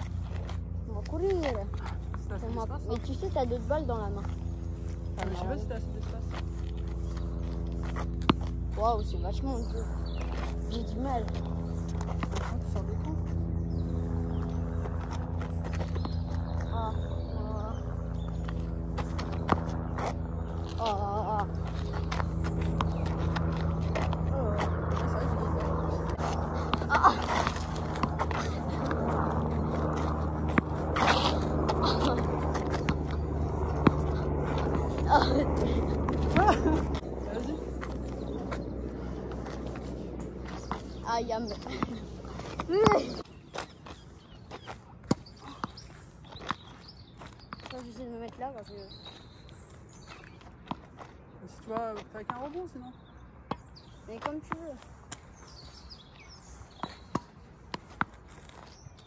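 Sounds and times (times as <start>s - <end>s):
low motor hum with pulsing beat: 0.0s - 43.4s
tennis ball bouncing: 21.9s - 37.0s.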